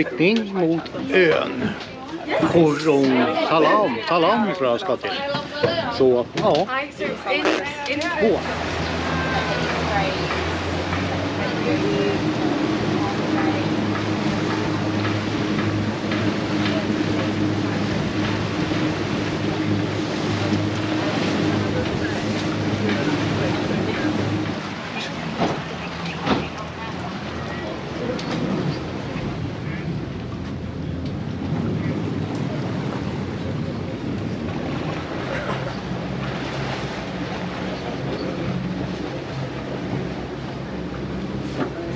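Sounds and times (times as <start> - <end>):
boat engine running: 0.0 - 41.9
water rushing past hull: 0.0 - 41.9.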